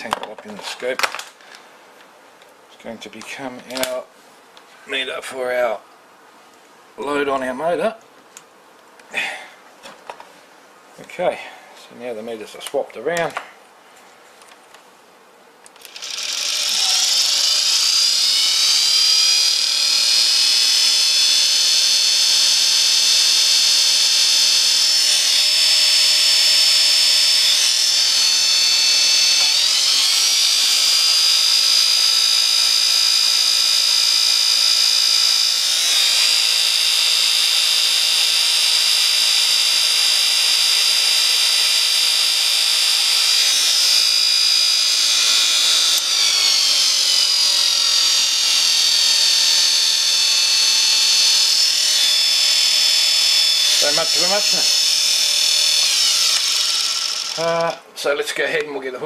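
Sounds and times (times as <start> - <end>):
electric motor whining: 15.7 - 57.8.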